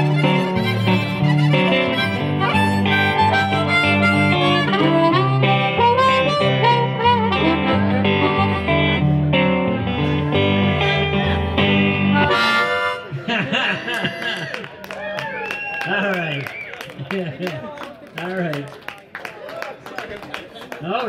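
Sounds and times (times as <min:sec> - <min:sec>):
electric guitar walking bass notes: 0:00.0 - 0:14.3
blues harmonica solo: 0:00.0 - 0:14.4.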